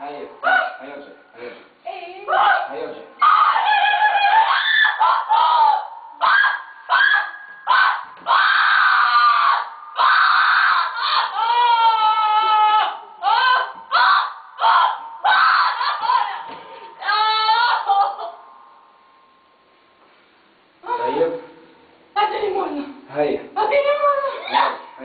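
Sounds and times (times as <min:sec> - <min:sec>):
woman screaming and wailing: 0:03.2 - 0:18.5.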